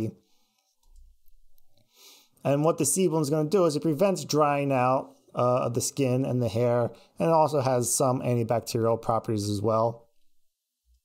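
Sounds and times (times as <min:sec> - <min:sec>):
man breathing in: 0:01.8 - 0:02.4.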